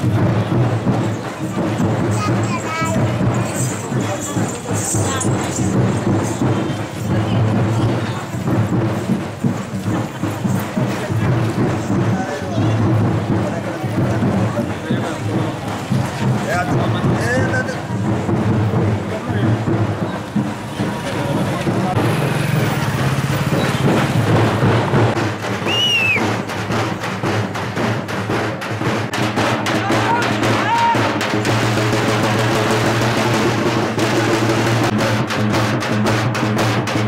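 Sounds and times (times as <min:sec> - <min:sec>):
crowd voices: 0:00.0 - 0:37.0
drums beating: 0:00.0 - 0:37.0
short high whistle-like tone: 0:25.7 - 0:26.2.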